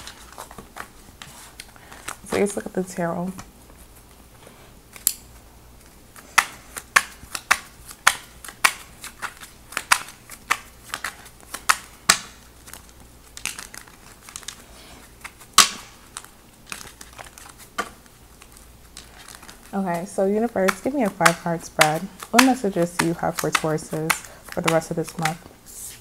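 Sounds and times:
cards shuffling: 0.0 - 2.7, 4.9 - 26.0.

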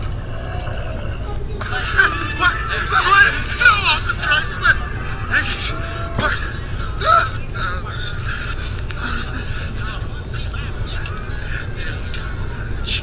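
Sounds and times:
loud vocal cry: 0.0 - 13.0
steady low hum: 0.0 - 13.0
voices and music from tv: 0.0 - 13.0.

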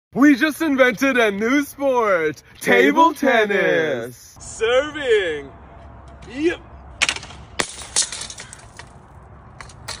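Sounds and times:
glass shards tinkling on asphalt: 7.6 - 10.0.

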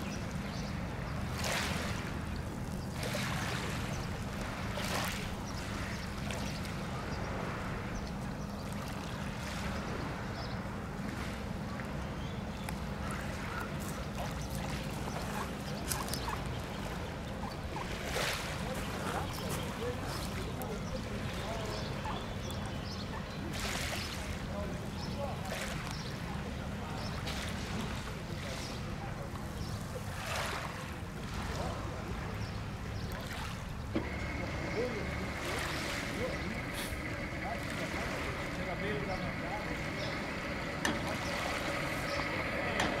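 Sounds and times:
lake water washing on gravel: 1.1 - 7.9, 13.2 - 22.1, 33.1 - 43.0
ducks calling: 13.0 - 23.5, 33.8 - 43.0
steady low rumble: 33.7 - 43.0.

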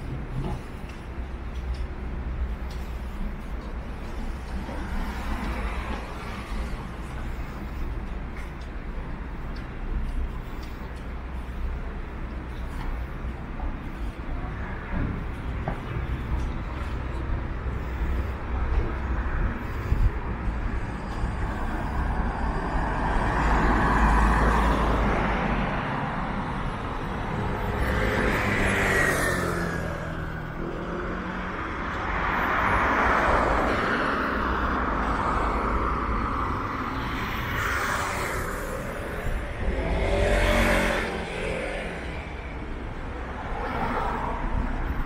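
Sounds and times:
cars and buses passing: 0.0 - 45.0
vehicle engine: 0.0 - 45.0.

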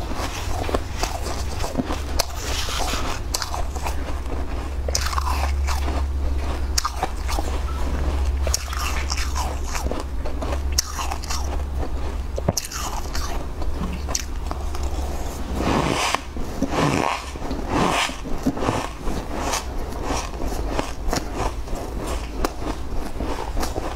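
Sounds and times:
crisp crunching and chewing: 0.0 - 23.9
steady low hum: 0.0 - 23.9.

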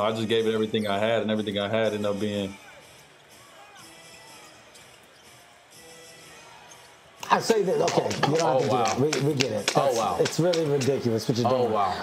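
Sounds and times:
ball bouncing on hardwood court: 7.8 - 10.9.

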